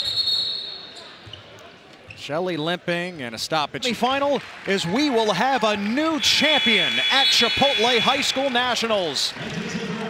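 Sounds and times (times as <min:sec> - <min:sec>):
referee's whistle blast: 0:06.2 - 0:09.2.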